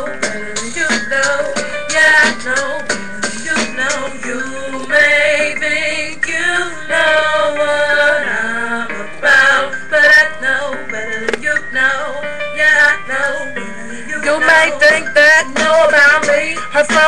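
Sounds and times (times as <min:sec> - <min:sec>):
person singing with music: 0:00.0 - 0:17.0.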